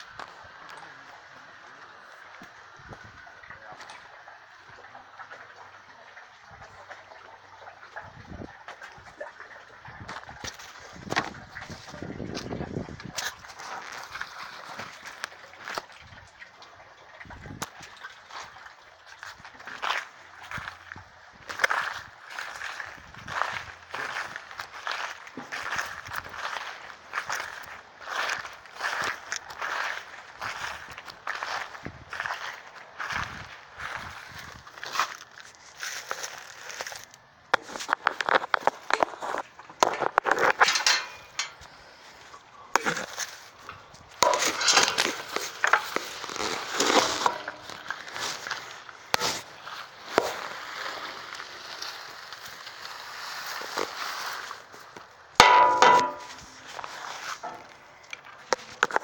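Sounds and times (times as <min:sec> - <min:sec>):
footsteps walking: 0:21.5 - 0:42.3, 0:43.1 - 0:50.6, 0:53.6 - 0:59.0
scattered knocks: 0:55.4 - 0:56.4.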